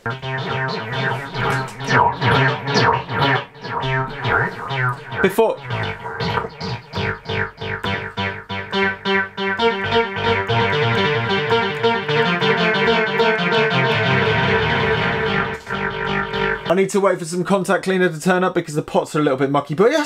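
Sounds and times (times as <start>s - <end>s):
synthesizer notes with echoes: 0.0s - 16.9s.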